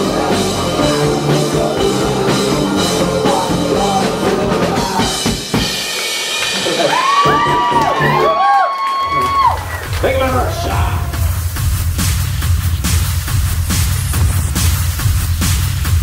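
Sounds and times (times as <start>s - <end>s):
person singing: 0.0s - 5.4s
live rock band playing: 0.0s - 8.2s.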